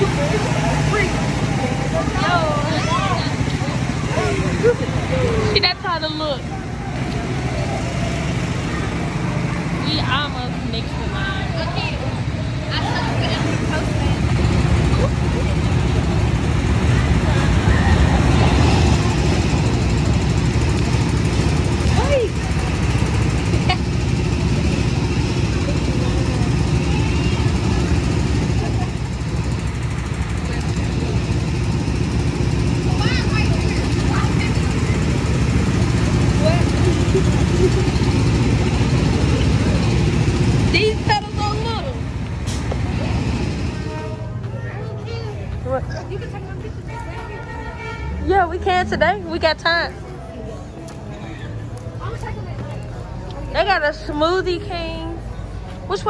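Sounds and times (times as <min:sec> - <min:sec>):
go-kart engine humming: 0:00.0 - 0:56.0.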